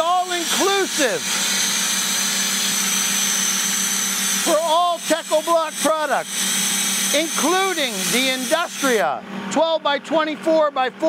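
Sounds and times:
vacuum pump running: 0.0s - 11.0s.

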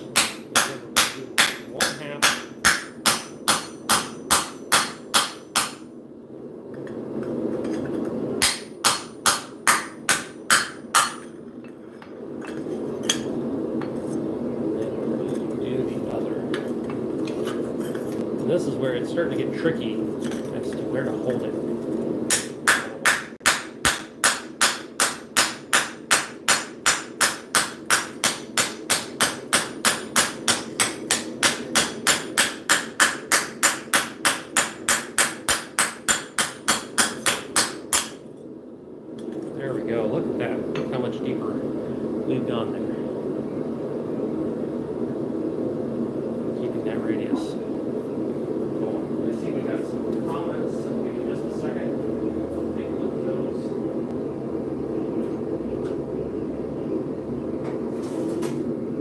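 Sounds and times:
hammer striking steel sheet: 0.0s - 5.9s, 8.4s - 11.3s.

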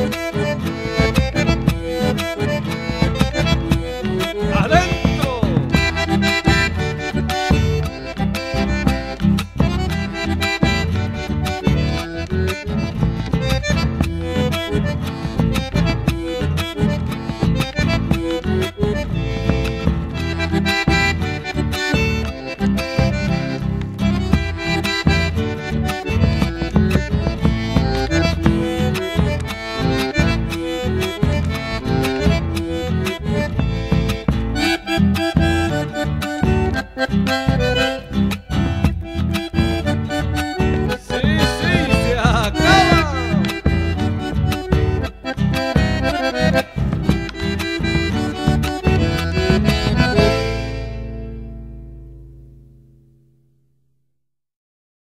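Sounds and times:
rhythmic accompaniment: 0.0s - 52.8s
accordion melody: 0.0s - 53.4s.

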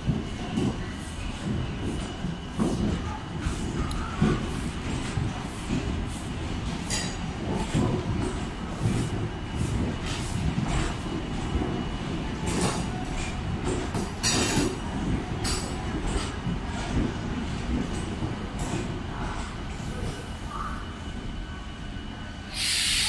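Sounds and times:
train wheels rumbling on rail: 0.0s - 23.0s.

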